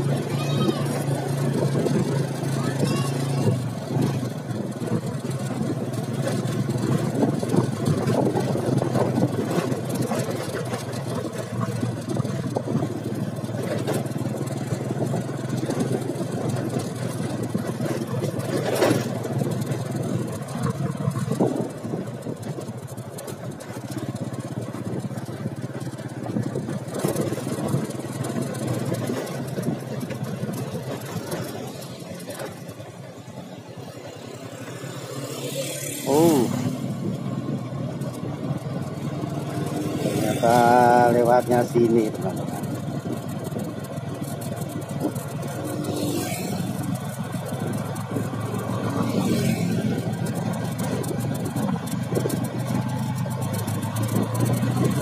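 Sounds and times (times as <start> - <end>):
wind rushing over microphone: 0.0 - 31.9, 33.4 - 55.0
motorcycle engine running: 0.0 - 55.0.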